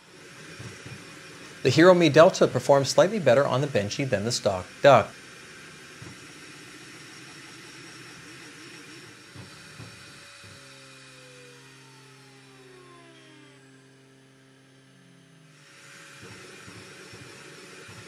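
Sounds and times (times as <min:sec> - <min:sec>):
fan hiss: 0:00.0 - 0:10.3
stepper motors whining: 0:00.0 - 0:18.0.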